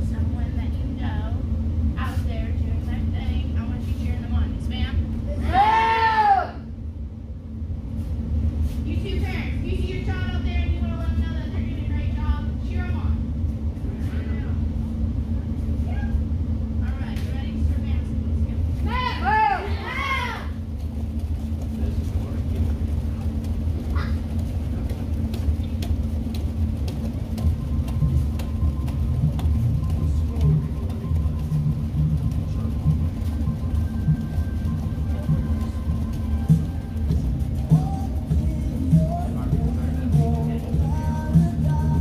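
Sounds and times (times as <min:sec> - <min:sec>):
steady low rumble: 0:00.0 - 0:42.0.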